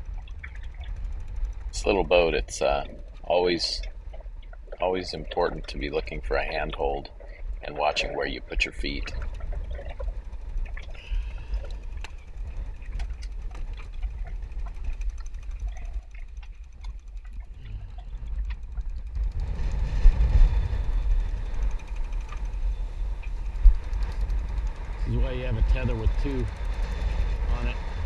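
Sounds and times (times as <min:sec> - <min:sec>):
gale wind buffeting microphone: 0:00.0 - 0:28.0
sea noise: 0:00.0 - 0:28.0.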